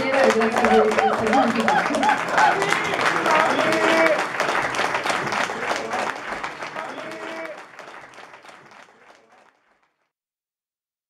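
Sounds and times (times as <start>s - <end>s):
voices: 0.0s - 7.8s
audience applauding: 0.0s - 10.1s.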